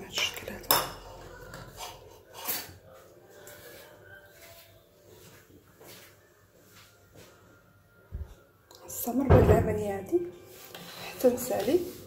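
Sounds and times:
metal spoon clinking ceramic bowl: 0.2s - 1.8s.

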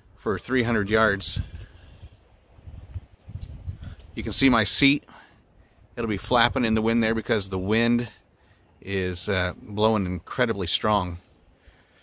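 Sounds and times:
wind buffeting microphone: 0.7s - 4.9s, 6.0s - 7.8s.

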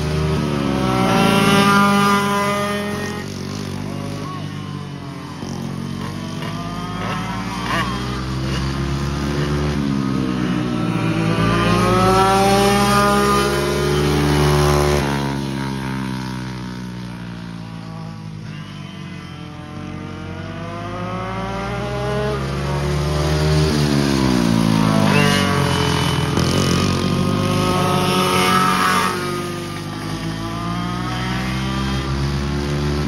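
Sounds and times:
go-kart engine passing by: 0.0s - 33.0s.

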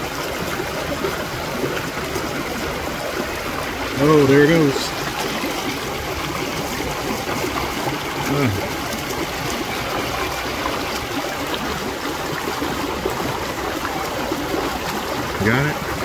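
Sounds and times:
creek water flowing: 0.0s - 16.0s.

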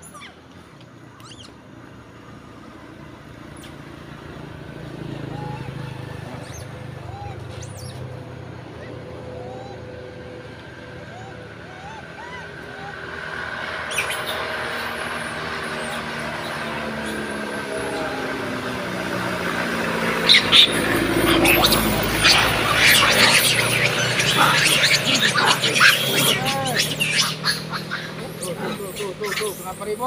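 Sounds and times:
faint short chirping calls: 0.0s - 1.6s, 5.2s - 8.2s, 13.7s - 18.3s, 20.2s - 30.0s
road vehicle approaching: 0.0s - 30.0s.

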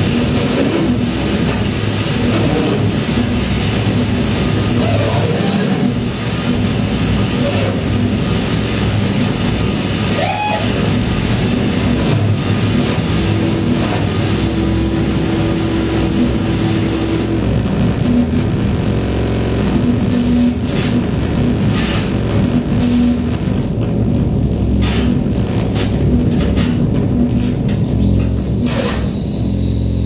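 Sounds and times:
sliding pitch sweep: 0.0s - 23.8s
dense loud rumbling texture: 0.0s - 30.0s
electronic noise improvisation: 0.0s - 30.0s
steady held tone: 0.0s - 30.0s.

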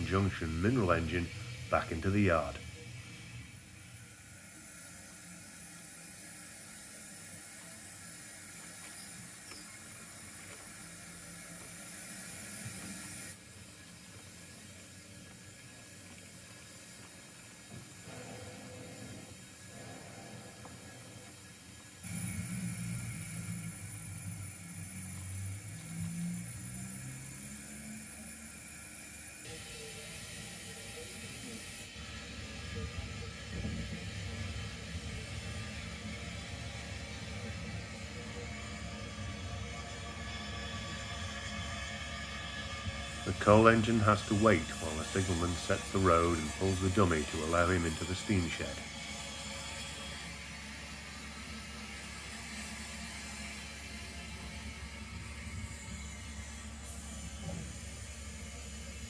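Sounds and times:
model steam locomotive hiss: 0.0s - 59.0s
rumble of wheels and motor: 0.0s - 59.0s.

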